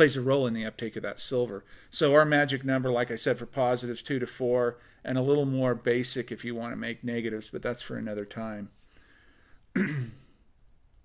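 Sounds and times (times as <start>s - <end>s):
man clearing his throat: 9.7s - 10.4s.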